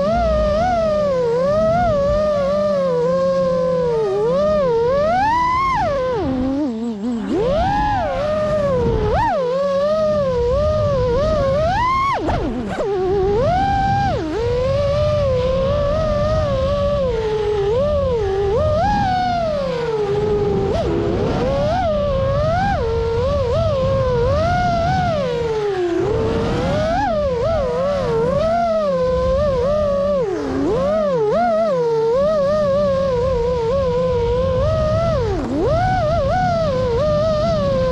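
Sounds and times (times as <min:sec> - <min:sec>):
drone motors whining: 0:00.0 - 0:37.9.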